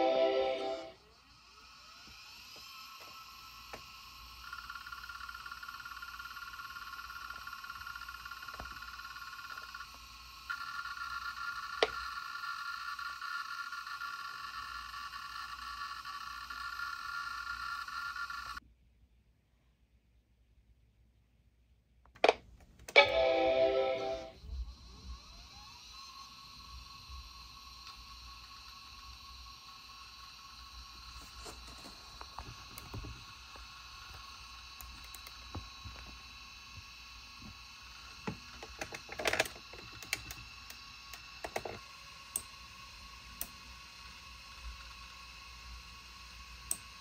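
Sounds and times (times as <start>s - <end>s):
computer startup chime: 0.0s - 1.0s, 23.0s - 24.4s
hard drive spindle motor buzzing: 0.0s - 18.6s, 24.2s - 47.0s.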